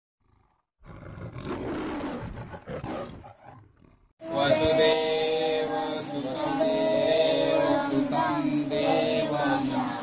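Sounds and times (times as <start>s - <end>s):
lion roar: 0.2s - 4.1s.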